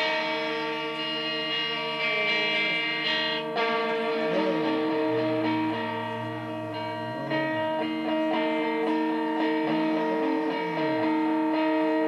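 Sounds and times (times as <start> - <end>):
electric guitar chords: 0.0 - 12.0
keyboard chords: 0.0 - 12.0
low bass line: 4.0 - 11.0.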